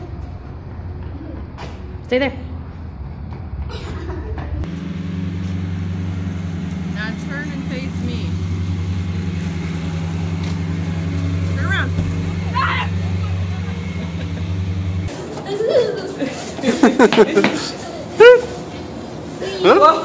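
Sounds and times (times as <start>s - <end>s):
engine idling: 4.6s - 15.1s.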